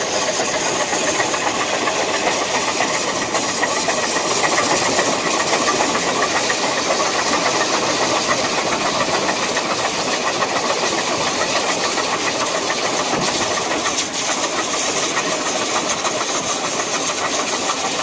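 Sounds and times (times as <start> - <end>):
steam locomotive exhaust and hiss: 0.0 - 18.0.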